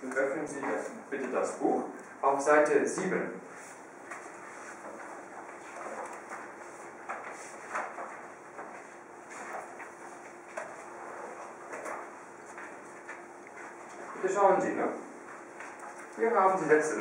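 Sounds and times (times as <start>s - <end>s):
faint steady hum: 0.0s - 17.0s
paper rustling: 3.6s - 14.2s.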